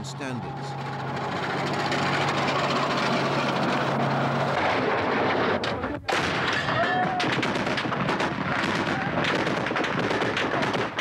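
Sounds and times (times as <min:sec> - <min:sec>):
tank engine running: 0:00.0 - 0:06.0.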